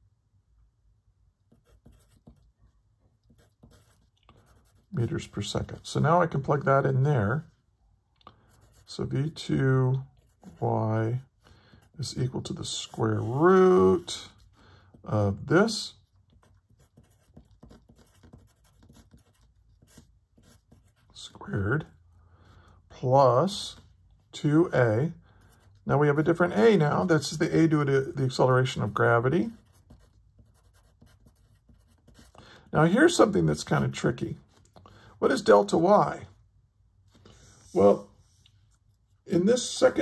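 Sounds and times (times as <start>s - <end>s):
pencil scratching on paper: 1.5s - 2.6s, 3.2s - 6.4s, 8.5s - 9.4s, 10.0s - 10.7s, 11.7s - 15.3s, 16.2s - 21.2s, 25.2s - 33.0s.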